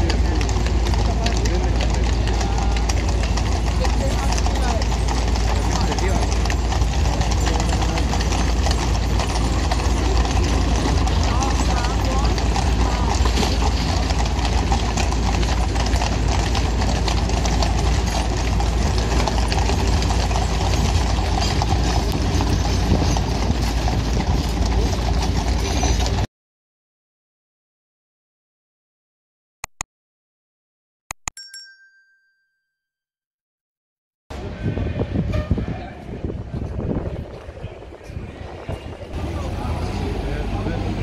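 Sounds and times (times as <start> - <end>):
people talking: 0.0 - 23.5, 24.2 - 26.3, 34.4 - 41.0.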